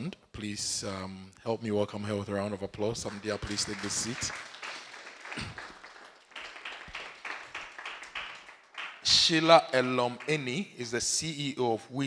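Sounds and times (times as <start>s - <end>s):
audience applauding: 3.0s - 10.6s.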